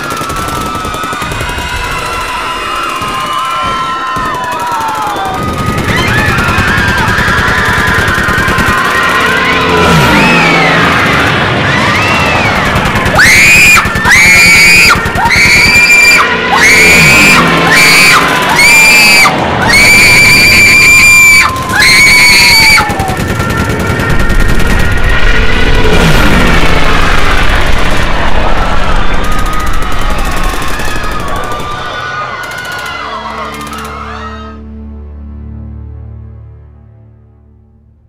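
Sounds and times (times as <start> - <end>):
high wailing tones: 0.0 - 34.7
deep rumble: 21.5 - 32.0
music: 29.2 - 38.0.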